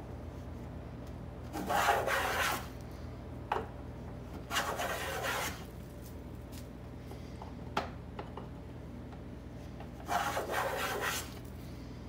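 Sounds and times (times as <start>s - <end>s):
wood plane rasping: 1.6s - 2.6s, 4.5s - 5.6s, 10.1s - 11.4s.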